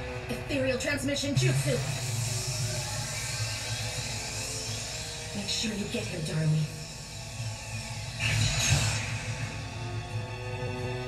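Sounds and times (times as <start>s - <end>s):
low drone: 0.0s - 11.0s
whirring hiss: 1.1s - 11.0s.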